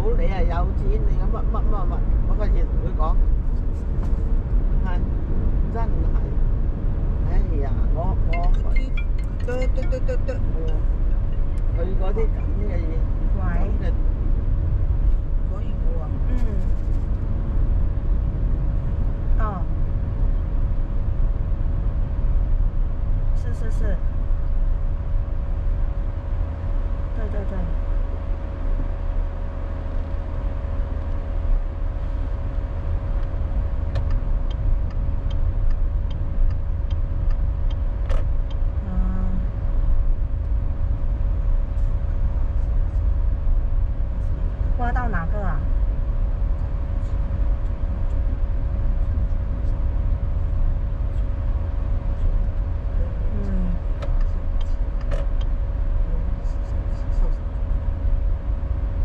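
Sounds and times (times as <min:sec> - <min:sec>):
constant hum: 0:00.0 - 0:59.0
road and tyre rumble: 0:00.0 - 0:59.0.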